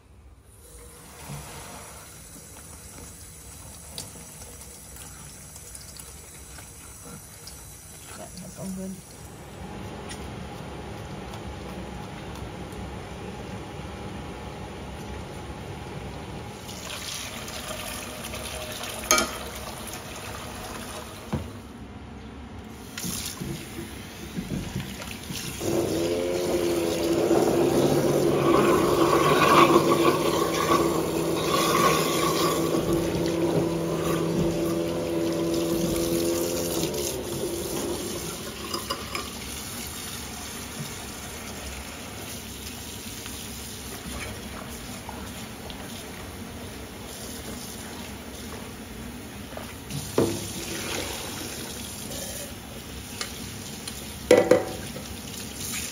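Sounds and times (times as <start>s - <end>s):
tap water running into a pot: 0.6s - 9.3s, 16.6s - 21.6s, 22.9s - 55.9s.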